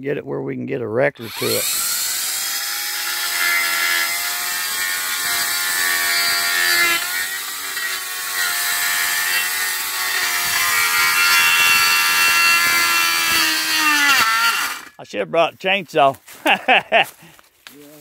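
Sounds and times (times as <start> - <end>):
electric pole saw whining: 1.2 - 15.0.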